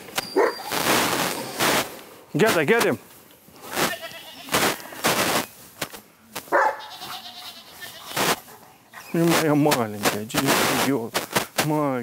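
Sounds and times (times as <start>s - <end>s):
dog barking: 0.4s - 0.7s, 6.5s - 6.9s.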